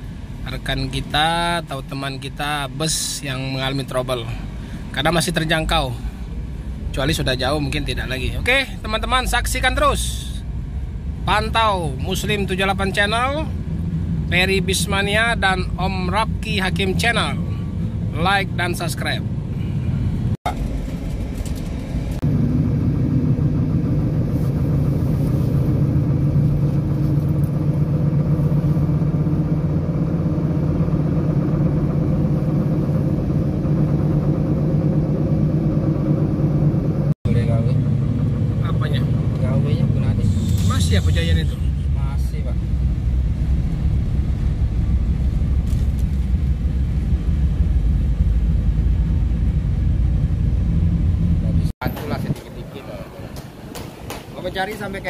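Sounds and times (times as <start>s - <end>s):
car engine and road noise: 0.0s - 55.0s.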